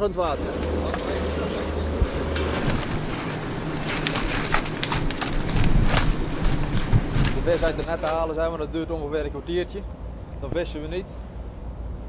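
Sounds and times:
rushing water and wind: 0.0 - 9.1
low engine hum: 0.0 - 12.0.

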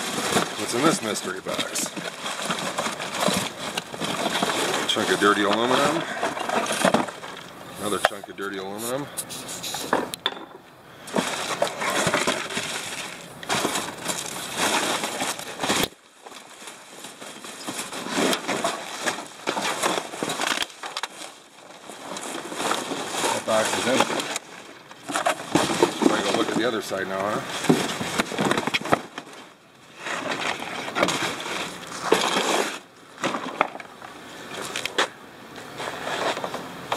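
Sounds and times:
plastic wrap and paper crinkling: 0.0 - 9.9, 11.1 - 34.0.

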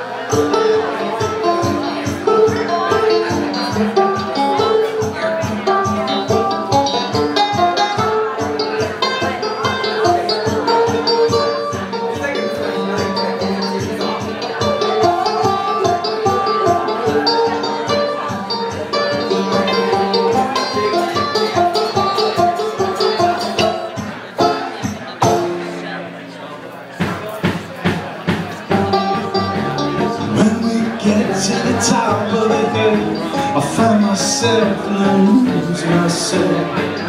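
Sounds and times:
banjo: 0.0 - 37.0
drums: 0.0 - 37.0
swing band playing: 0.0 - 37.0.

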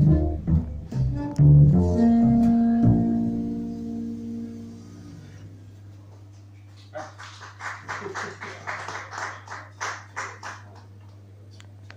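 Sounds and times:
scattered audience clapping: 6.5 - 11.3.

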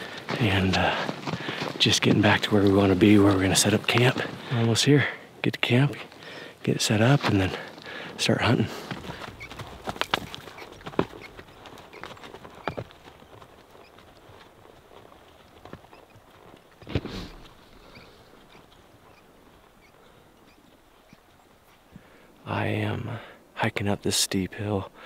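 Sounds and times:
hoof steps in snow: 0.0 - 5.1, 6.3 - 22.1.

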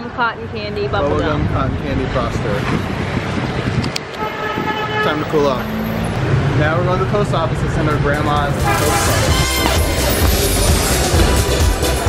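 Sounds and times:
street traffic: 0.0 - 12.0
vehicle horn toot: 4.2 - 5.4, 8.6 - 10.2.

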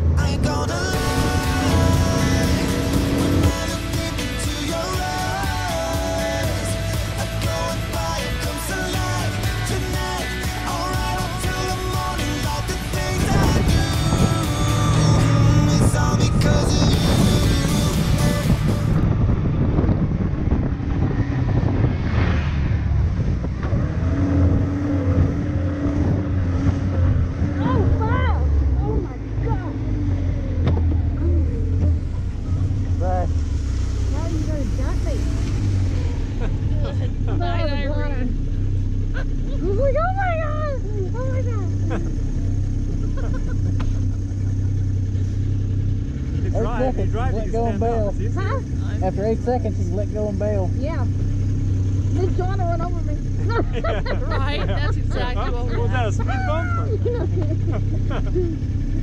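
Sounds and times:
background music: 0.0 - 19.2
snowmobile engine running: 0.0 - 59.0.

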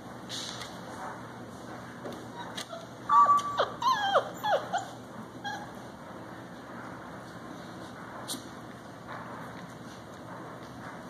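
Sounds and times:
puppy whimpering: 2.3 - 5.8.

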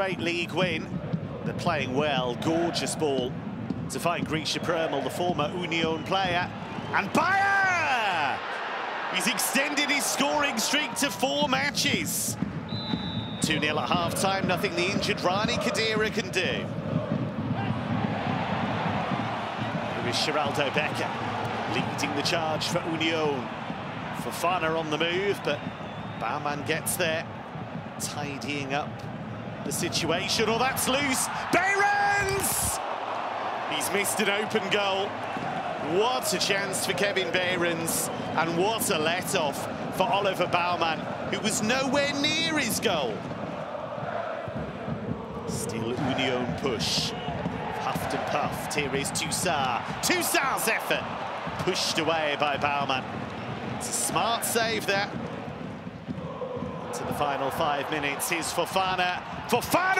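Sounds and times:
stadium crowd din: 0.0 - 59.9.

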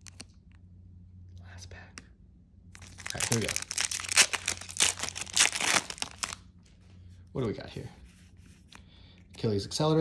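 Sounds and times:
foil wrapper tearing and crinkling: 2.8 - 6.4.

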